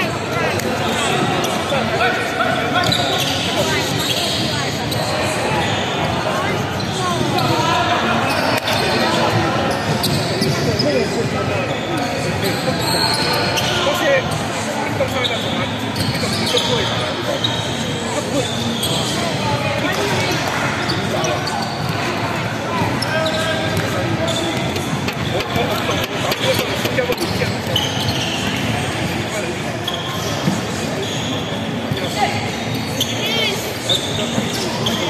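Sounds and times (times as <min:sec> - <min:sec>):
players calling out and chattering: 0:00.0 - 0:35.0
sneakers squeaking: 0:00.0 - 0:35.0.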